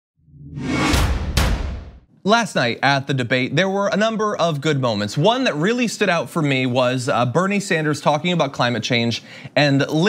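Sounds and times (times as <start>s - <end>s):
whoosh: 0.2s - 2.1s
sharp hits: 0.4s - 2.1s.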